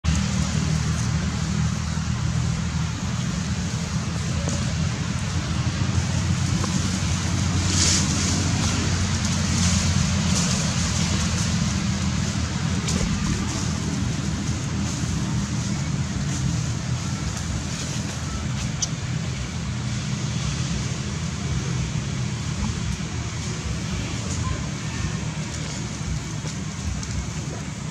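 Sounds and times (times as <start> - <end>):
low rumbling outdoor noise: 0.0 - 27.9.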